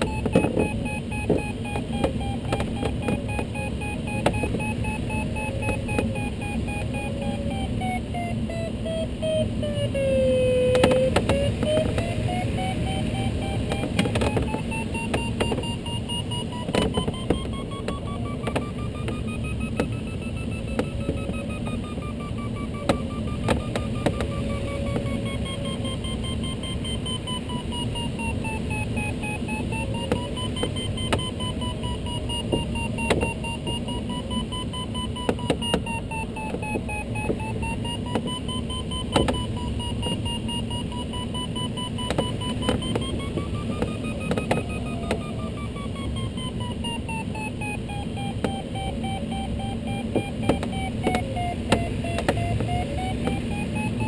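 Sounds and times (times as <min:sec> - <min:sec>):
variometer tone wavering in pitch: 0:00.0 - 0:54.0.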